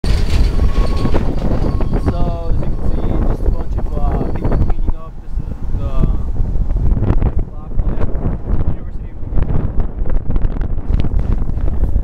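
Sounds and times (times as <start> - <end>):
machine clanks and knocks: 0.0 - 3.0
diesel engine low rumble: 0.0 - 12.0.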